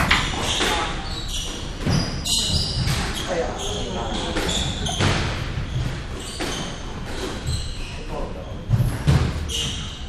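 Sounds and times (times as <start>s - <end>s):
shoes squeaking on wooden floor: 0.1s - 10.0s.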